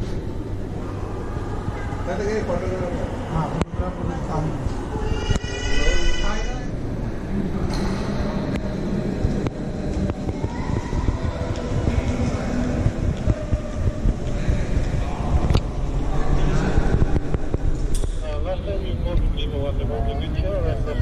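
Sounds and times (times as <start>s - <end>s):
crowd chatter: 0.0s - 21.0s
steady low rumble: 0.0s - 21.0s.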